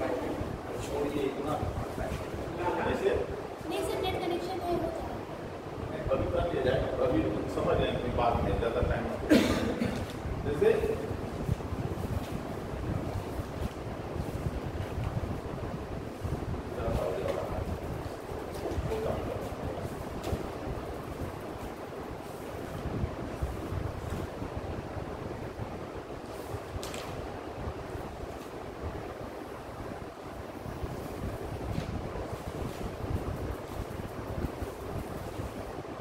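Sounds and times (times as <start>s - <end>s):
low rumbling air noise: 0.0s - 36.0s.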